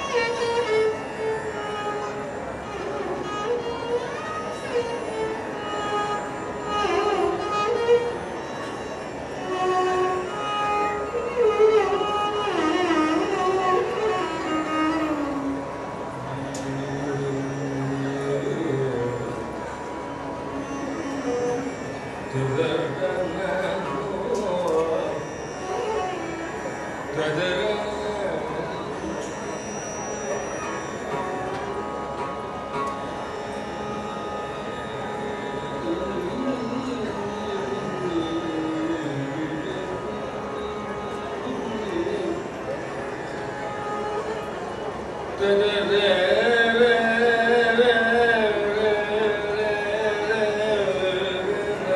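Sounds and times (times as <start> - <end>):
violin melody sliding between notes: 0.0 - 45.5.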